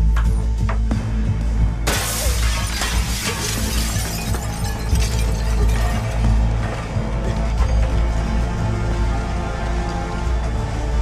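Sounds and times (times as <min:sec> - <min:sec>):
music with low drone: 0:00.0 - 0:11.0
glass window smashing: 0:01.8 - 0:06.4
glass shards clinking: 0:01.9 - 0:06.2.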